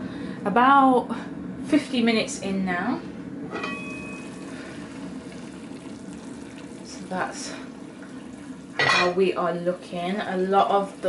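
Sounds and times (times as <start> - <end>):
metal pot lid ringing: 3.5 - 4.3
stew bubbling in a pot: 3.8 - 11.0.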